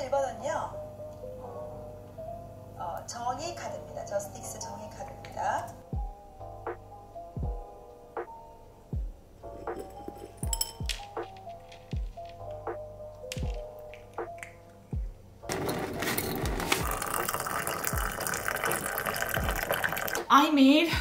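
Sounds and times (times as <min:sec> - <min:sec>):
background music with low beat: 0:05.8 - 0:15.5, 0:16.5 - 0:19.7
water pouring into glass teapot: 0:16.3 - 0:20.3.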